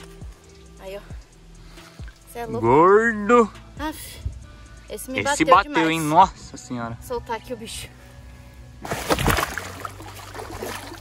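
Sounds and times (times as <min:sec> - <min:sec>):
fish splashing into water: 0:08.8 - 0:11.0.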